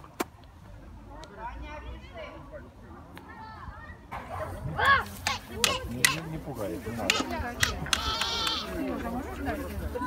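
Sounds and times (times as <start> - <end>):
people talking: 1.1 - 10.0.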